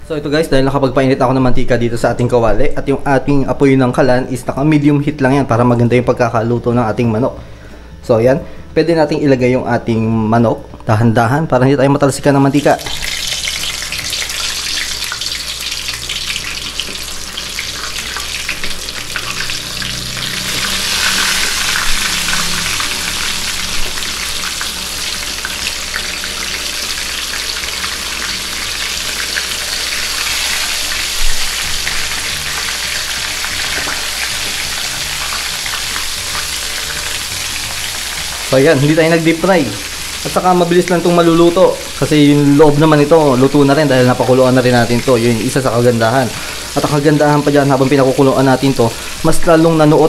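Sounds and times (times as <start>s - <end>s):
chicken frying in hot oil: 12.6s - 50.0s.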